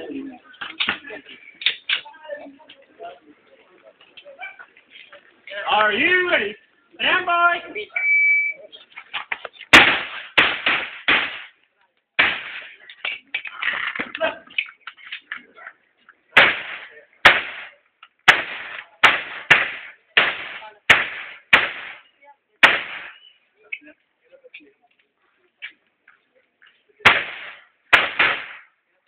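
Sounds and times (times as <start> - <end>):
handgun shots echoing: 27.1 - 28.6.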